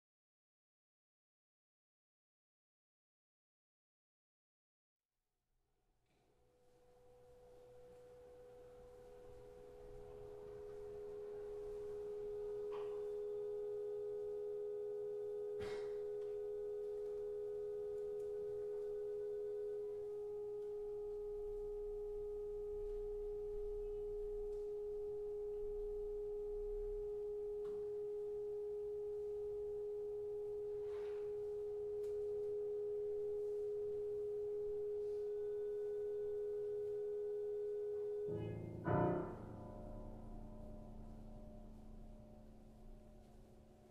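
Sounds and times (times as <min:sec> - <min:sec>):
pure held tones: 0:06.1 - 0:43.9.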